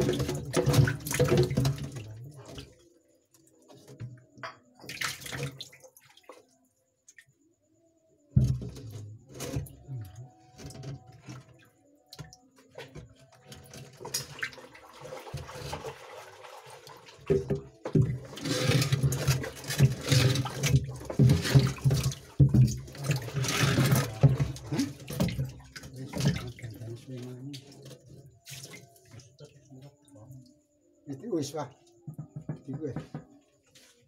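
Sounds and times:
metal can scraping tank bottom: 0.0 - 1.9, 17.2 - 26.6
water splashing in a tub: 0.0 - 4.2, 4.8 - 7.4, 8.3 - 33.6.

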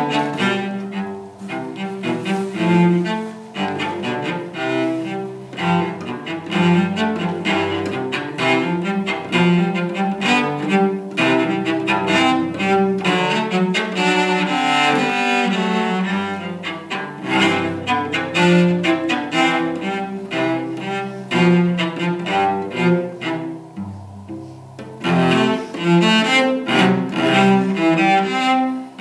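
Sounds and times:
solo cello bowed: 0.0 - 29.0.

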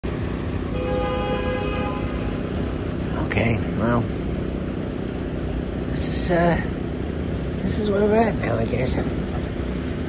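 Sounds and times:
city traffic rumble: 0.0 - 10.0
long car horn blast: 0.6 - 2.4.

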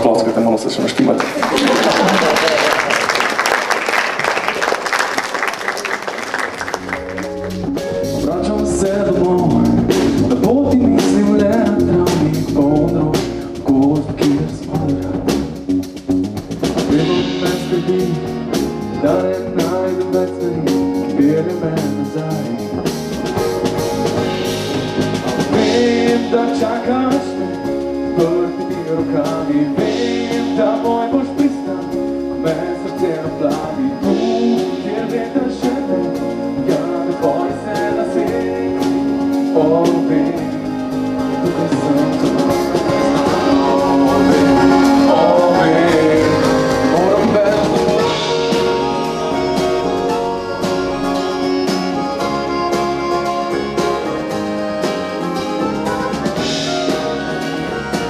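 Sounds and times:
live band playing: 0.0 - 58.0
applause: 0.9 - 7.6.

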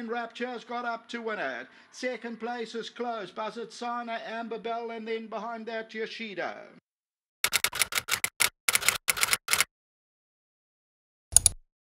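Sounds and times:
typewriter keystroke clicks: 7.4 - 9.7, 11.3 - 11.6.

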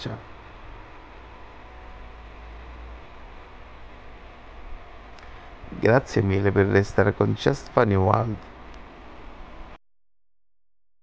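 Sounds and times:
low hum: 0.0 - 10.9.

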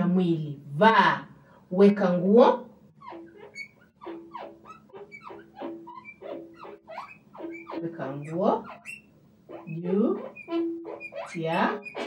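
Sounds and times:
pen squeaking on writing board: 3.0 - 12.0.

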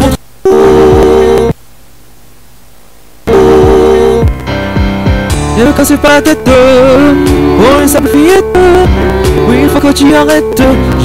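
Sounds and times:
low hiss: 0.0 - 11.0
deep sliding bass notes: 3.3 - 10.0
loud synthesizer chord: 3.3 - 11.0.

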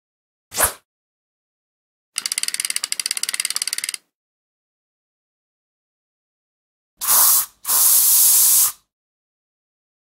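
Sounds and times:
rapid mechanical clicks: 2.2 - 4.0.

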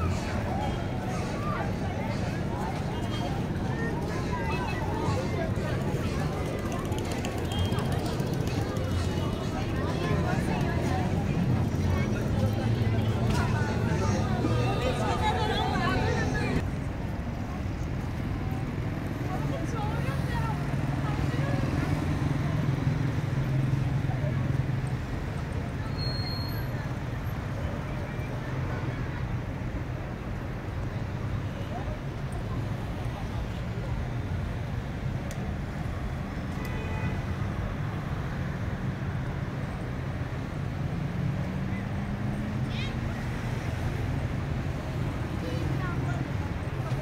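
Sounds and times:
faint voices of passers-by: 0.0 - 47.0
road traffic rumble: 0.0 - 47.0.

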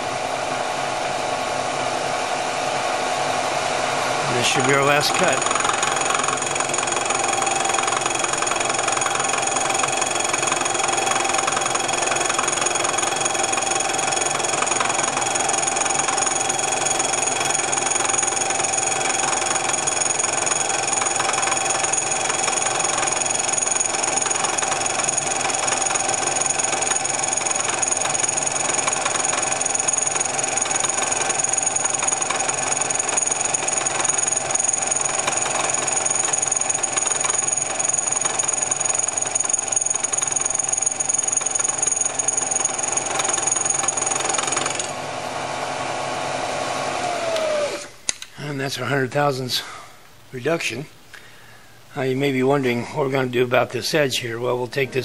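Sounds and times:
milling machine spindle hum: 3.6 - 47.9
high-pitched cutter whine: 4.2 - 44.9.

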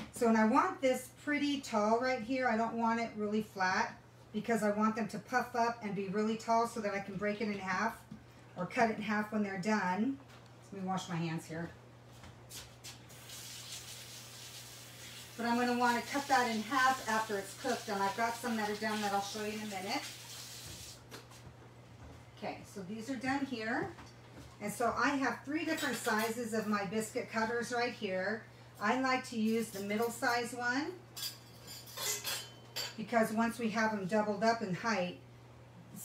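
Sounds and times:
tap water running into sink: 13.1 - 21.1.

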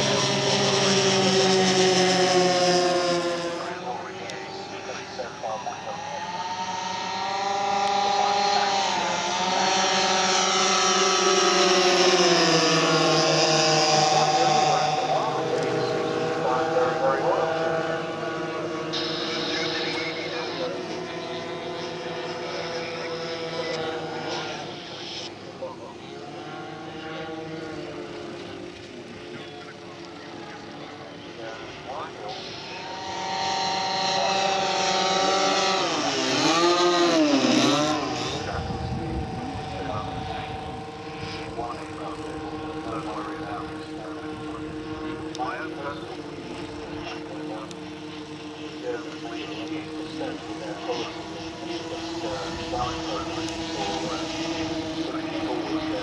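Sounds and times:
model aircraft engines droning: 0.0 - 56.0.

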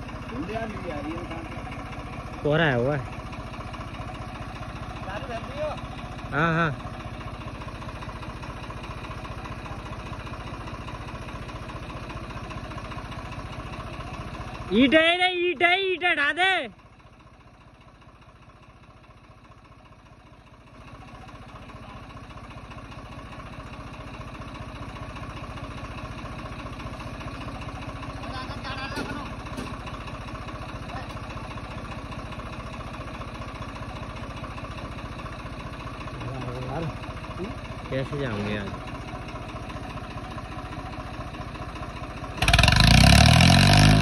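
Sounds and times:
tractor diesel engine running: 0.0 - 44.0.

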